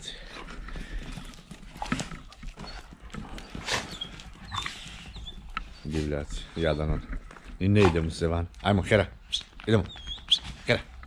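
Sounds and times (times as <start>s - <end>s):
dogs scuffling: 0.2s - 11.0s
dogs vocalizing: 0.2s - 11.0s.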